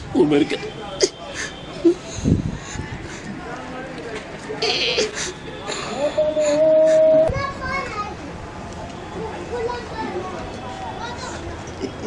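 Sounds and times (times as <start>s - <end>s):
held vocal cry: 5.9s - 7.3s.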